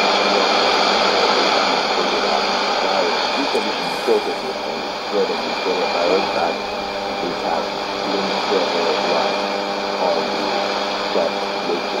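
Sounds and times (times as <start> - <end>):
faint radio speech: 0.0 - 12.0
low steady hum: 0.0 - 12.0
static hiss: 0.0 - 12.0.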